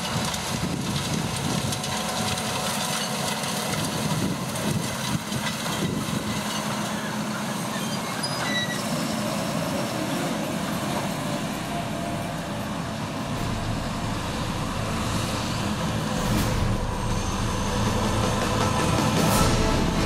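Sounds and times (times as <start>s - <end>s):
tractor diesel engine under load: 0.0s - 20.0s.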